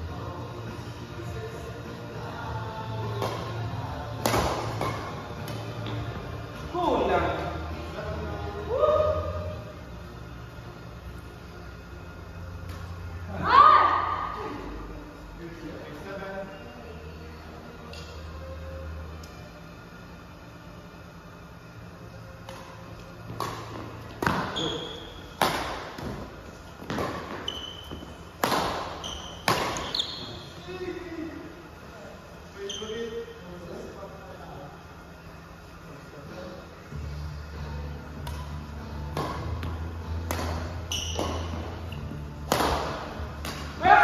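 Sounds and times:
racquets hitting shuttlecock: 4.2 - 6.0, 22.4 - 30.2, 38.2 - 41.7, 42.4 - 43.9
shoe squeak: 24.4 - 25.3, 27.3 - 28.2, 29.0 - 30.6, 32.6 - 33.3, 40.8 - 42.1.

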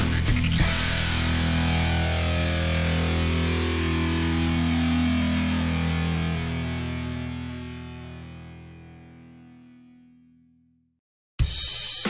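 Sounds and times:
bass ringing: 0.0 - 9.0
distorted electric guitar chord: 0.0 - 10.4.

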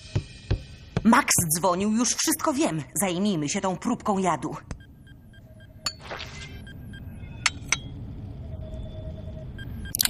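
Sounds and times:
low hum of lab equipment: 1.6 - 10.0.

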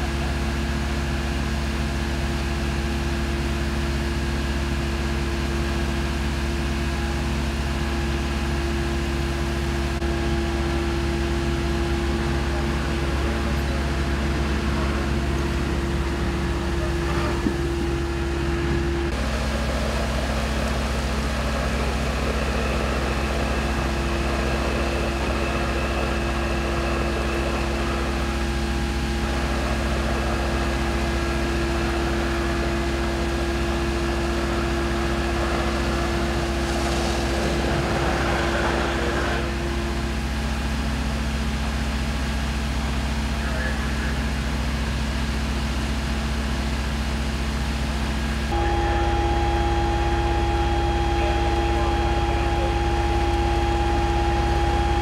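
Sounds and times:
fire engine pumps humming: 0.0 - 55.0.

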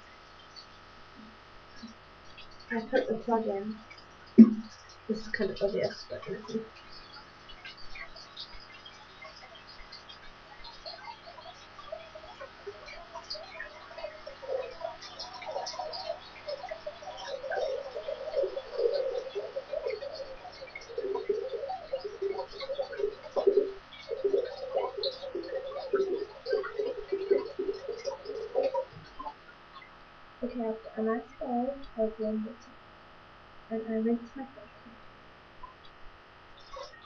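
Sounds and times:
bubbling splashes: 1.2 - 30.6.

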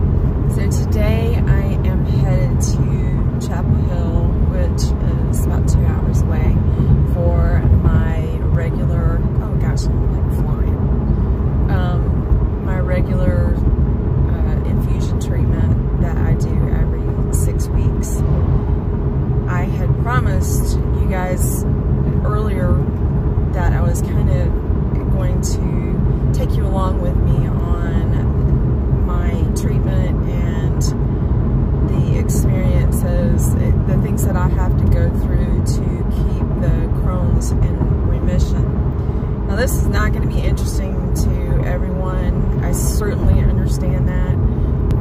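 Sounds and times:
car road and engine rumble: 0.0 - 45.0
woman talking: 0.5 - 10.8, 11.7 - 18.2, 19.5 - 22.9, 23.5 - 31.0, 31.9 - 38.7, 39.5 - 44.4.

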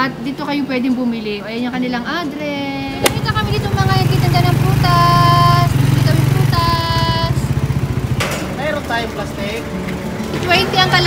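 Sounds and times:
motorcycle engine idling: 2.8 - 10.6.

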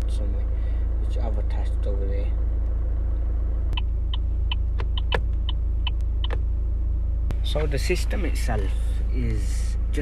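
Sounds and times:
steady low rumble: 0.0 - 10.0
turn signal clicks: 3.7 - 6.5.

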